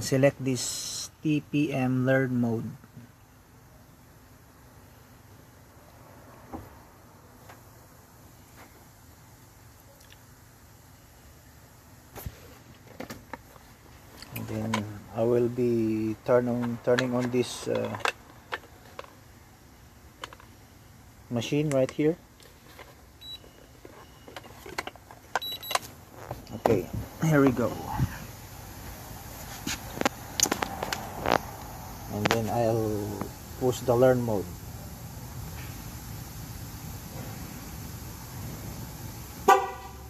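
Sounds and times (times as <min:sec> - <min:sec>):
low room noise: 0:00.0 - 0:40.0
low steady hum: 0:00.0 - 0:40.0
car horn chirp: 0:39.4 - 0:40.0.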